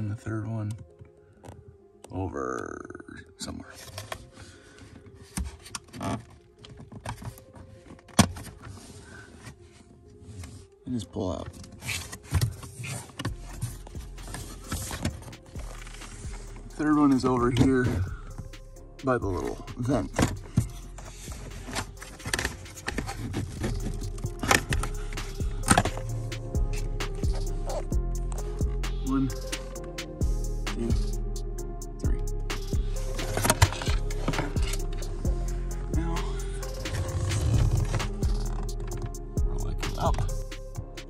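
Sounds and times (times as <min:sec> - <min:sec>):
background music: 0:00.0 - 0:41.0
light plastic scraping: 0:20.2 - 0:24.9.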